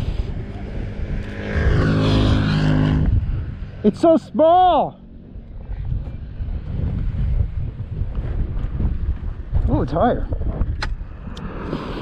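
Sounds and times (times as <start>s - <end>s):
wind buffeting microphone: 0.0s - 3.8s, 5.3s - 12.0s.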